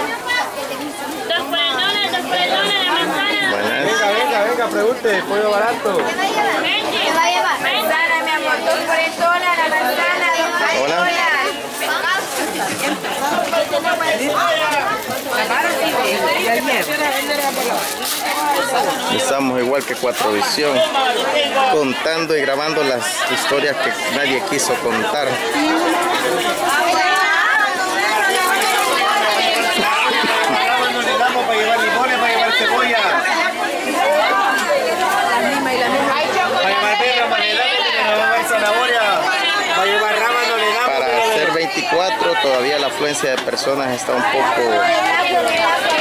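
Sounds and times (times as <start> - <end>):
crowd chatter: 0.0 - 46.0.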